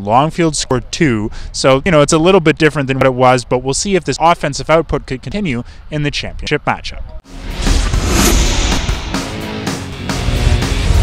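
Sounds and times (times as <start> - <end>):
whoosh: 7.3 - 10.1
deep bass hit: 7.3 - 11.0
transition music sting: 7.3 - 11.0.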